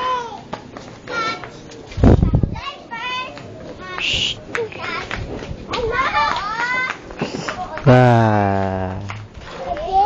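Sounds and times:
children's voices: 0.0s - 8.0s, 9.4s - 10.0s.

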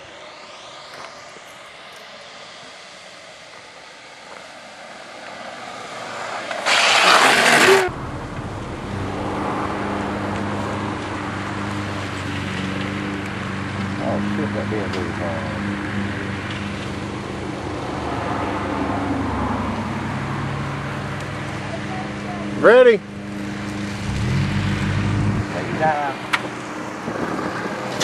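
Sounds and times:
rush of noise: 0.0s - 21.9s, 22.5s - 28.0s
car engine idling: 6.7s - 15.5s.

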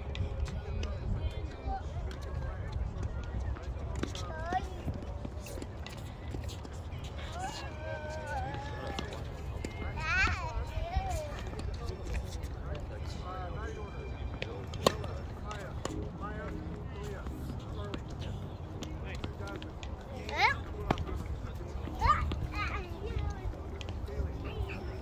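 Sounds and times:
wind rumble on microphone: 0.0s - 5.7s.

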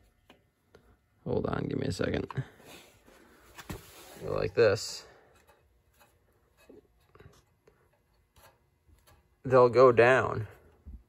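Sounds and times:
faint rubs and taps of parts: 2.7s - 11.0s.

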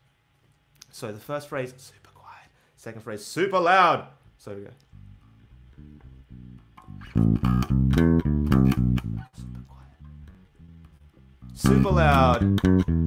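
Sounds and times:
electric bass plucked notes: 4.9s - 13.0s.

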